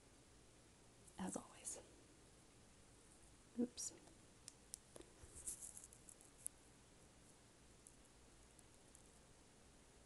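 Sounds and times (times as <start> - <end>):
light rustling: 4.9 - 6.6.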